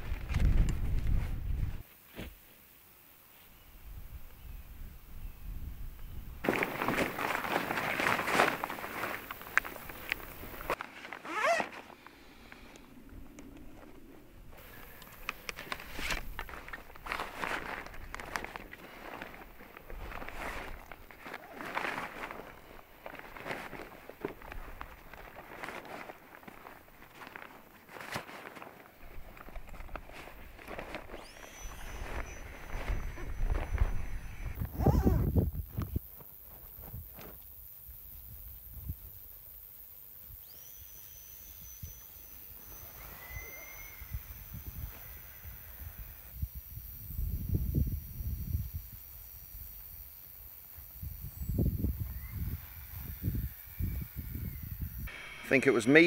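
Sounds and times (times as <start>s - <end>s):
nylon fabric rustling: 6.4s - 12.0s, 15.5s - 34.0s.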